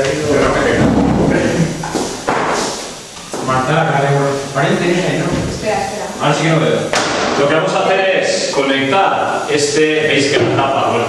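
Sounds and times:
man speaking: 0.0 - 1.8, 3.4 - 5.5, 6.2 - 11.0
thump on a desk: 6.9 - 7.4.

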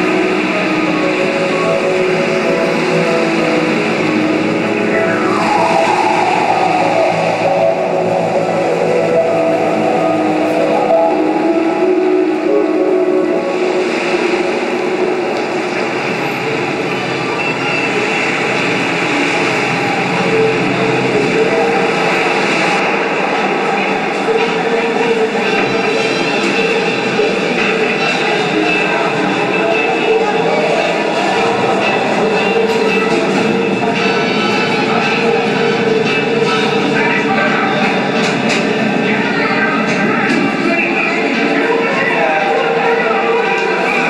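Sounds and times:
electronic music over loudspeakers: 0.0 - 44.0
falling pitch sweep: 2.2 - 17.0.

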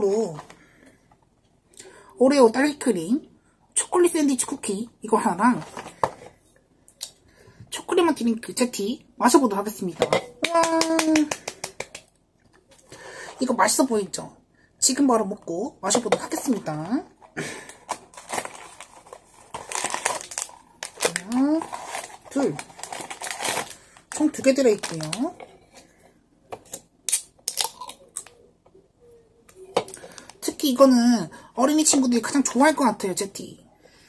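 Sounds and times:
rapid hand clapping: 10.4 - 12.1.

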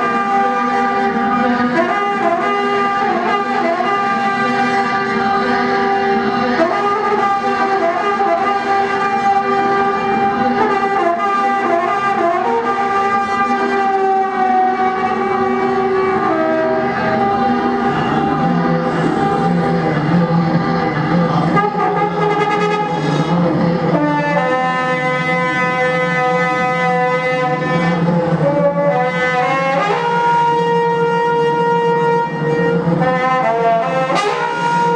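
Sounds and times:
electronic keyboard drone: 0.0 - 34.9
trumpet sustained tones: 0.0 - 34.9.

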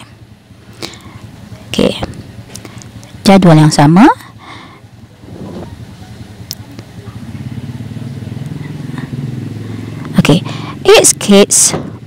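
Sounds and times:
vehicle engine passing by: 5.0 - 12.0.

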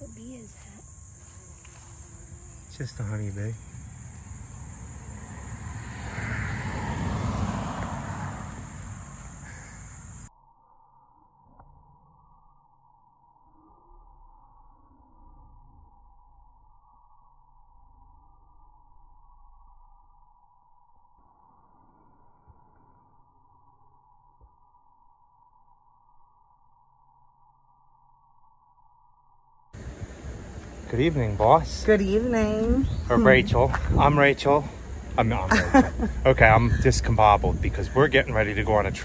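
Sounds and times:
outdoor background noise: 0.0 - 39.0
person speaking: 30.9 - 39.0.

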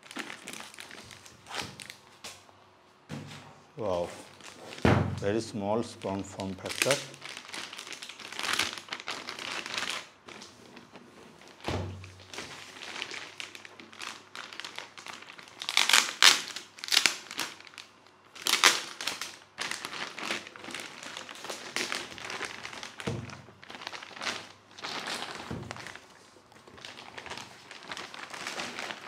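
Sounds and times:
plastic bag crinkling: 0.0 - 2.4, 3.8 - 29.0.

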